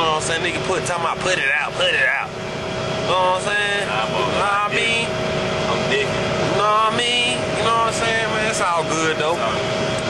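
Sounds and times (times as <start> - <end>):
men talking: 0.0 - 9.9
coach road and engine drone: 0.0 - 10.0.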